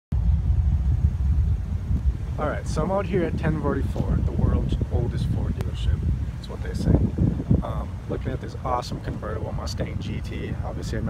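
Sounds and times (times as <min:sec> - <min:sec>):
loud uneven low rumble: 0:00.1 - 0:11.0.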